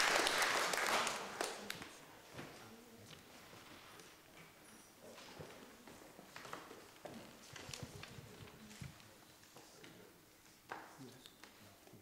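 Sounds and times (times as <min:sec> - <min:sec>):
faint footsteps: 0:02.2 - 0:12.0.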